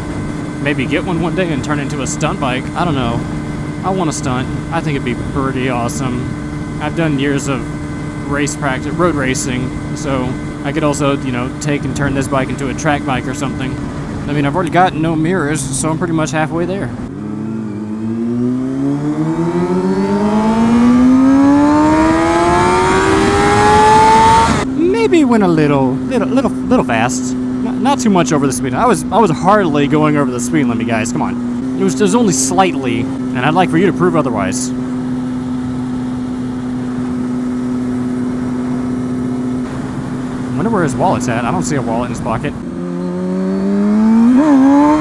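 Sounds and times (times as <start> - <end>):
motorcycle engine pulling hard: 0.0 - 45.0
road and wind noise: 0.0 - 45.0.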